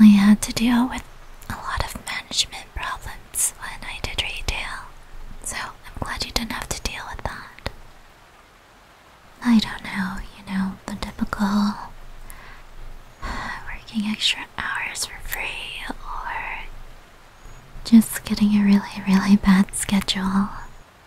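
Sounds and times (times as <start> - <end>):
woman speaking: 0.0 - 2.6, 9.4 - 11.9, 13.3 - 16.7, 17.9 - 20.7
woman whispering: 0.0 - 7.8, 9.4 - 12.6, 13.2 - 16.8, 17.8 - 20.8.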